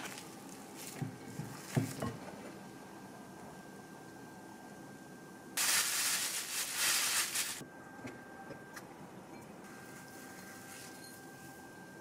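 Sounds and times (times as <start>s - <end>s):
breadcrumbs rustling: 5.6s - 7.6s
plastic bag rustling: 5.6s - 7.6s.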